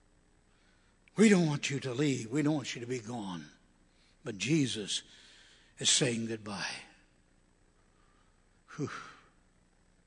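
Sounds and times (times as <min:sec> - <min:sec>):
man sighing: 0:08.7 - 0:09.4.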